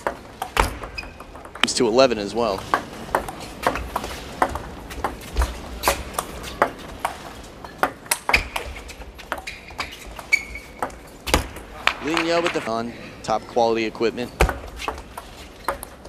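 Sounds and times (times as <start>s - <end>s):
table tennis ball clicking: 2.5s - 5.2s.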